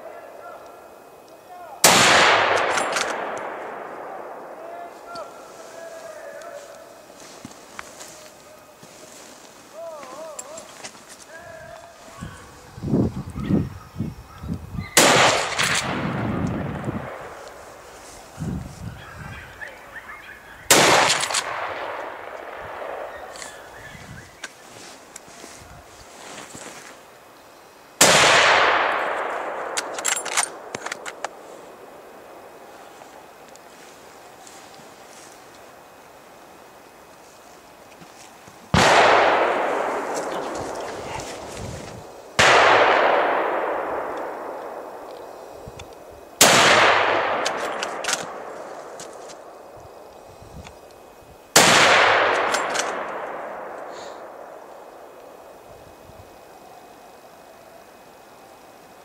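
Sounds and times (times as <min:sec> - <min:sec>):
rifle shots echoing: 0:01.8 - 0:06.0, 0:15.0 - 0:17.9, 0:20.7 - 0:23.8, 0:28.0 - 0:32.9, 0:38.7 - 0:45.4, 0:46.4 - 0:50.1, 0:51.5 - 0:55.2
sharp clicks: 0:29.1 - 0:31.4.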